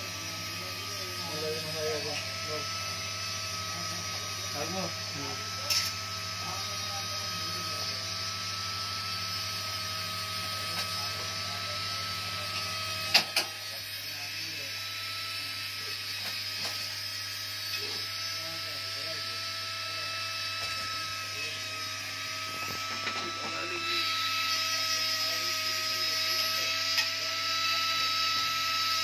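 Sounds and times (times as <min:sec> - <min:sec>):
small electric motors whining: 0:00.0 - 0:29.0.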